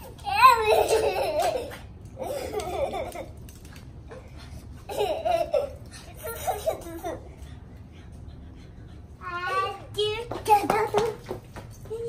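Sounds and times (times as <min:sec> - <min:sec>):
girl giggling: 0:00.5 - 0:03.4, 0:04.1 - 0:07.3.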